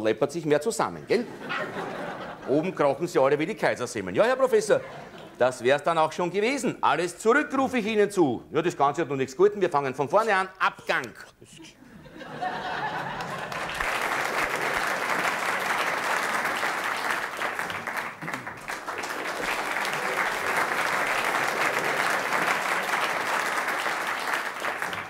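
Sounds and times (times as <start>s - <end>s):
audience applause: 12.3s - 25.0s.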